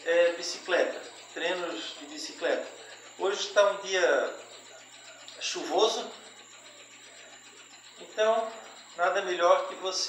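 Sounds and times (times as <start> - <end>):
exercise bike flywheel whirring: 0.0 - 10.0.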